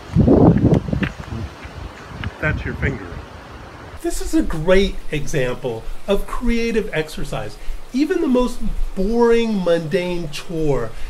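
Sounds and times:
rumbling on microphone: 0.0 - 3.2.

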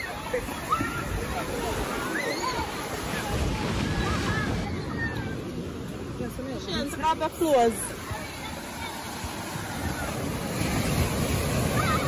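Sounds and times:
faint voices: 0.0 - 12.0
splashing water and surf: 0.0 - 12.0.

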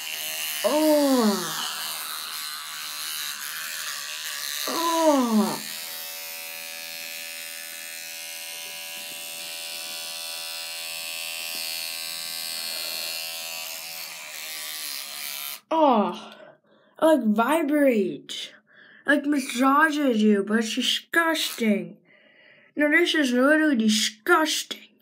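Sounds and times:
electric toothbrush buzzing: 0.0 - 15.7, 21.3 - 21.8
person saying oh: 0.6 - 1.7, 4.7 - 5.7.

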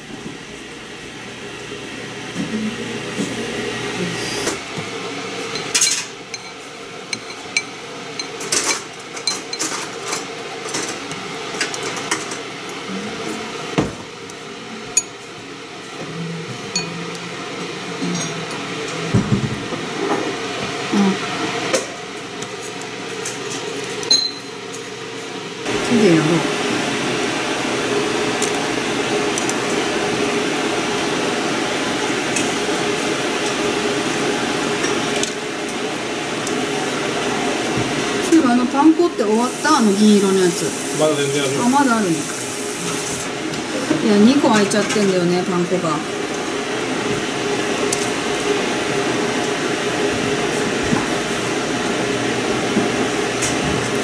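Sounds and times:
chopsticks tapping ceramic bowls: 5.5 - 9.8.

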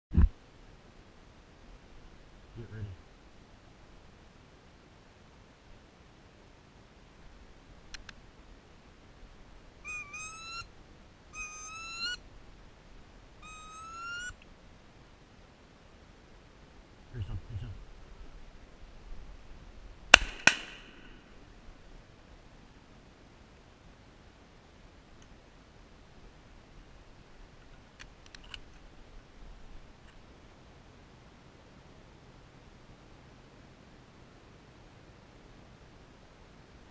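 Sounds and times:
faint outdoor hiss: 0.1 - 36.9
duck whistled squeals: 9.8 - 10.7, 11.4 - 12.2, 13.4 - 14.4.

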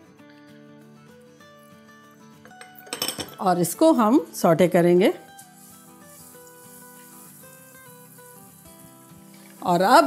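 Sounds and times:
quiet background music: 0.0 - 10.0
garlic sizzling in oil: 4.3 - 10.0.

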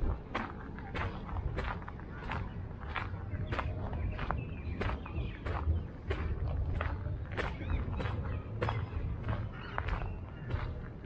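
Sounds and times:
footsteps on paved path: 0.0 - 11.0
steady low rumble: 0.0 - 11.0.

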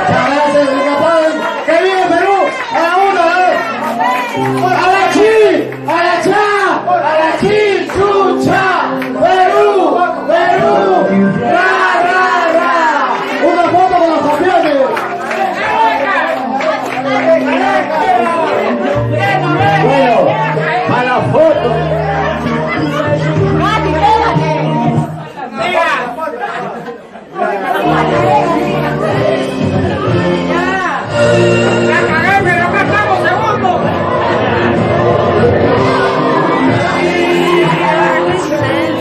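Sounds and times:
background music: 0.0 - 25.4, 27.8 - 39.0
crowd chatter in a room: 0.0 - 39.0.

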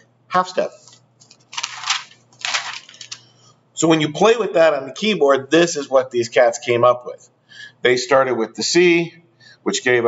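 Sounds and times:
notebook page rustling: 0.6 - 3.3.

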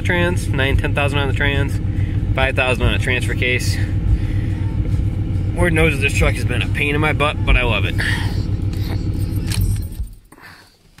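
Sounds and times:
truck engine idling: 0.0 - 11.0
ignition click: 8.6 - 10.2
keys jingling: 8.8 - 10.4.

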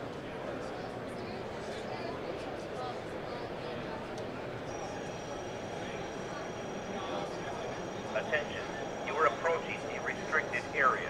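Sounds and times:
murmur of busy hall: 0.0 - 11.0
spoken alert over horn speaker: 8.1 - 11.0.

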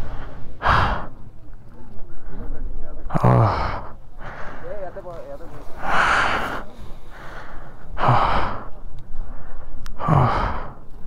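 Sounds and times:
person breathing out heavily: 0.0 - 1.2, 3.2 - 4.8, 5.7 - 10.9.

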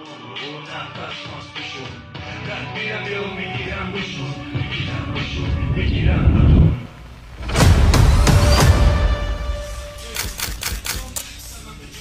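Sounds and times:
faint low rumble: 3.2 - 8.1
sharp clicks: 10.1 - 11.3.

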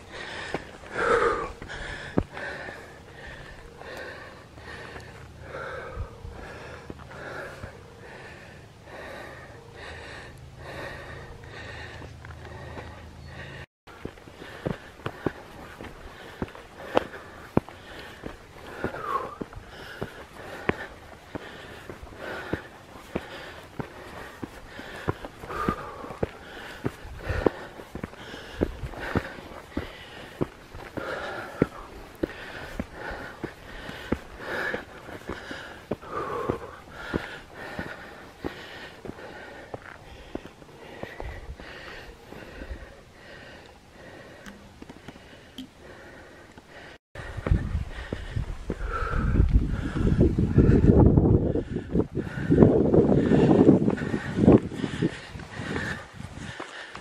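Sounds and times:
person breathing hard: 0.0 - 57.0
shoes tapping and scuffing on rock: 1.6 - 2.4, 13.9 - 42.0.

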